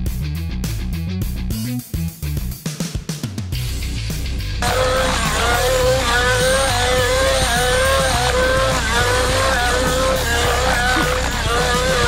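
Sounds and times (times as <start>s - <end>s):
model helicopter engine whining: 4.6s - 12.0s.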